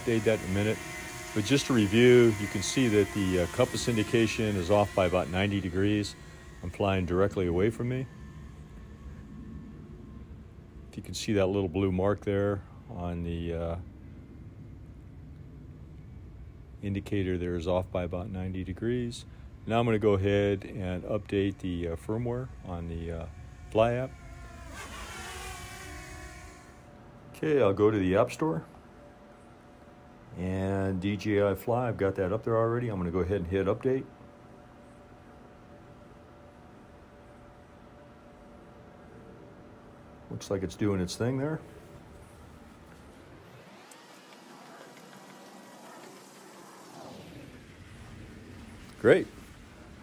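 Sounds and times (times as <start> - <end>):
drone propellers buzzing: 0.0 - 10.9, 19.3 - 50.0.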